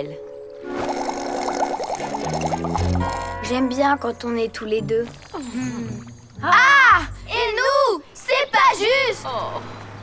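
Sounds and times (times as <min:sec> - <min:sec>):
soft background music: 0:00.0 - 0:08.0.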